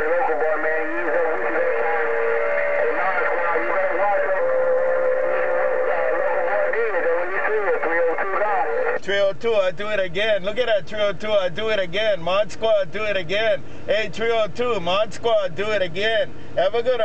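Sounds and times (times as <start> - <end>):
steady radio whistle: 0.0 - 9.0
voices over radio speaker: 0.0 - 17.0.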